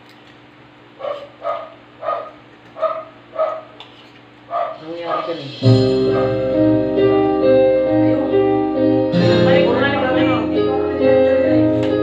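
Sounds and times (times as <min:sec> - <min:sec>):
dog barking: 0:01.0 - 0:03.8, 0:04.5 - 0:05.4.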